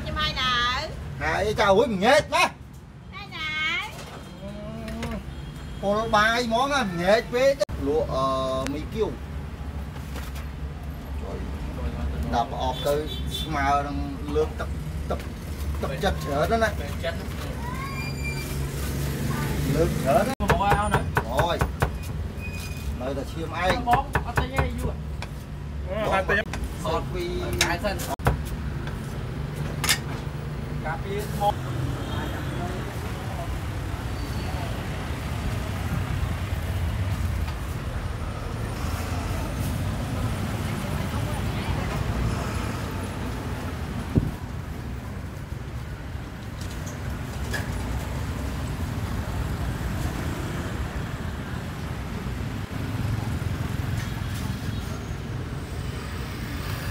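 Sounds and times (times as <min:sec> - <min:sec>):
street traffic rumble: 0:00.0 - 0:56.9
cars and scooters passing: 0:03.1 - 0:24.0, 0:24.6 - 0:56.9
cleaver chopping on wooden block: 0:20.4 - 0:22.0.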